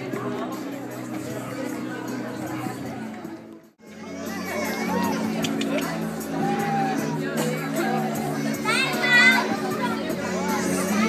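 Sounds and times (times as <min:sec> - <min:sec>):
background music: 0:00.0 - 0:11.0
people talking in a group: 0:00.0 - 0:11.0.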